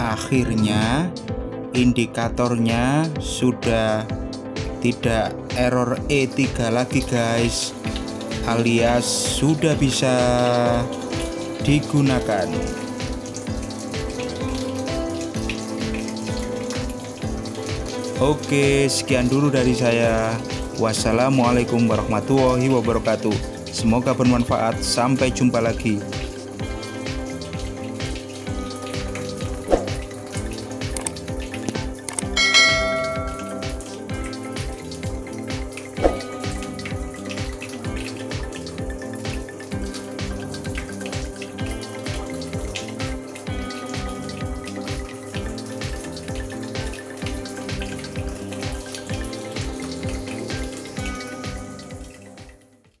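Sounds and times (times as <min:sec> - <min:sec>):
background music with beat: 0:00.0 - 0:53.0
water filling washing machine: 0:00.0 - 0:53.0
bell-like chime: 0:32.4 - 0:33.8.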